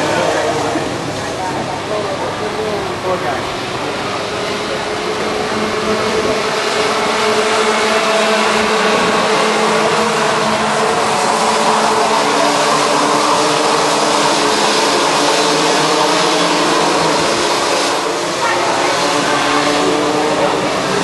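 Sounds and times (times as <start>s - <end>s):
kart engines racing: 0.0s - 21.0s.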